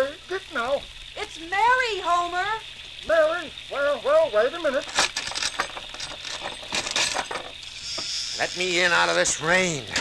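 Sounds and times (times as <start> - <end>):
rain hissing: 0.0 - 10.0
metallic clicks and rattles of locks: 4.8 - 7.6.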